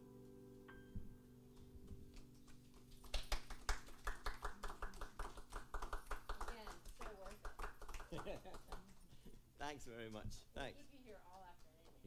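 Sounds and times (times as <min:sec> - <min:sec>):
people clapping: 0:02.1 - 0:09.2.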